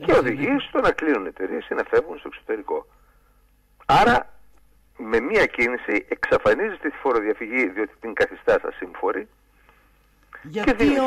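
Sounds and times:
person talking: 0:00.0 - 0:00.9.

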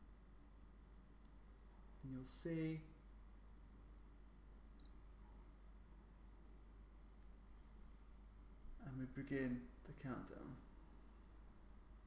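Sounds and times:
short high-pitched meter beep: 0:04.8 - 0:05.1.

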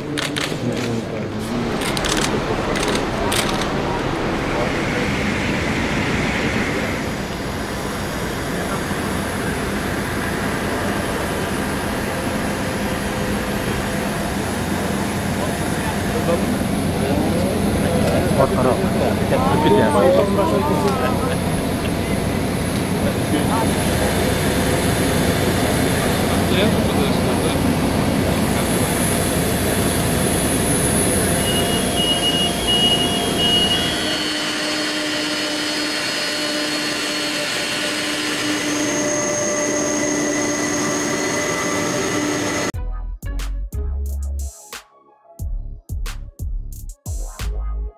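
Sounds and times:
people talking indistinctly: 0:00.0 - 0:05.5, 0:15.2 - 0:29.2.

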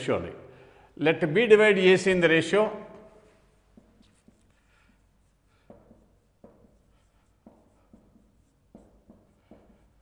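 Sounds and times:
marker pen on whiteboard: 0:02.8 - 0:10.0
marker tip tapping board: 0:05.6 - 0:06.8, 0:07.4 - 0:10.0.

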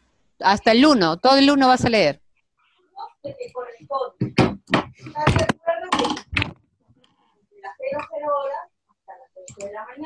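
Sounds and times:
sharp knocks: 0:04.2 - 0:06.6.

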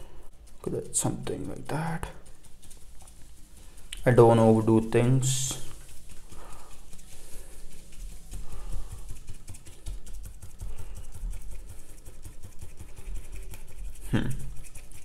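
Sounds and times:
brush dabbing paint on paper: 0:00.0 - 0:15.0.

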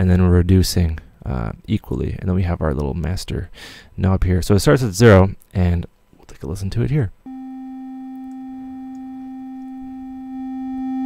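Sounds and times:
sine-wave test tone: 0:07.2 - 0:11.0.

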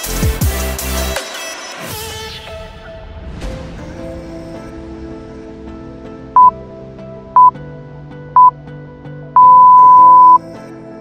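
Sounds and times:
background music with soft chords: 0:01.8 - 0:11.0
high electronic timer beeps: 0:09.4 - 0:10.4.

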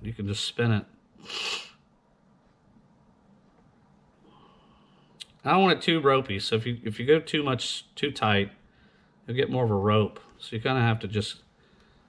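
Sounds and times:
man's sharp breath out through nose: 0:01.2 - 0:01.8.

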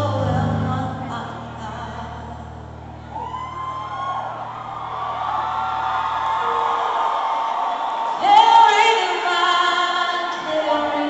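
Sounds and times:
low sustained chord: 0:00.0 - 0:05.8
crowd screaming: 0:02.7 - 0:10.5.

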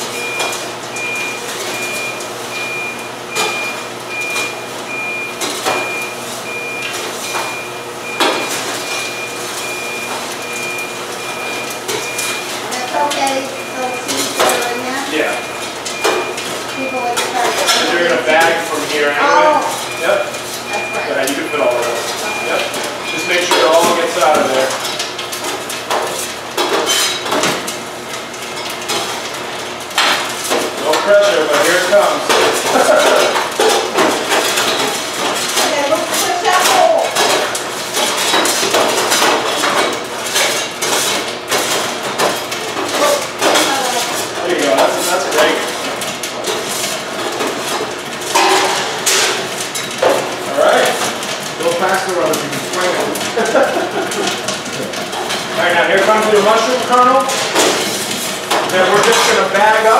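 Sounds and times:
popcorn machine humming: 0:00.0 - 0:59.9
electronic beeping: 0:00.2 - 0:24.8.

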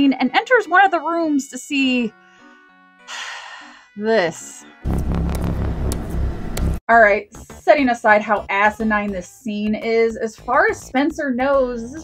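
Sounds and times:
low rumbling drone: 0:04.8 - 0:06.8.

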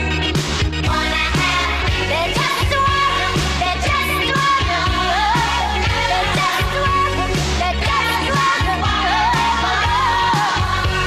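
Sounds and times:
drum beat and bass: 0:00.0 - 0:11.0.

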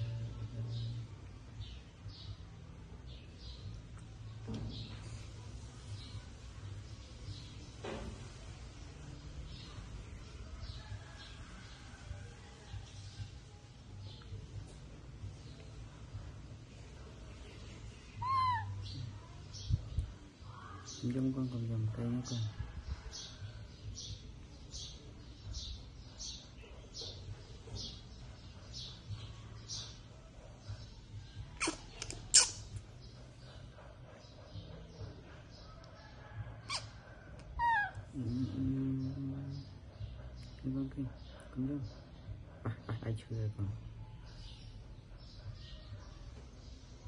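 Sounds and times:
baby monkey high call: 0:18.2 - 0:19.0, 0:31.6 - 0:32.8, 0:36.6 - 0:37.0, 0:37.6 - 0:38.1
low drawn-out human voice: 0:37.6 - 0:39.7.

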